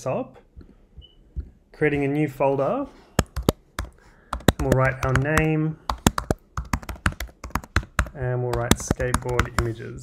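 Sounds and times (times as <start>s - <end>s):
typing on computer keyboard: 3.2s - 9.7s.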